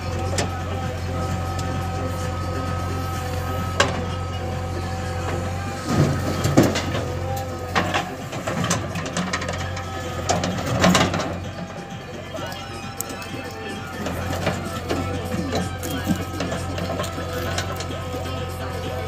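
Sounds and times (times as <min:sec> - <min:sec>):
diesel engine running: 0:00.0 - 0:19.0
soil tipped with knocks and thuds: 0:03.4 - 0:19.0.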